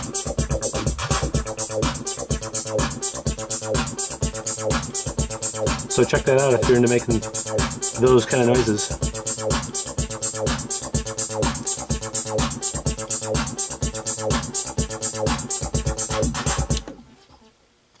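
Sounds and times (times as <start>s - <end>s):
kick drum: 0.0s - 7.8s, 8.9s - 16.9s
synth bass line: 0.0s - 16.9s.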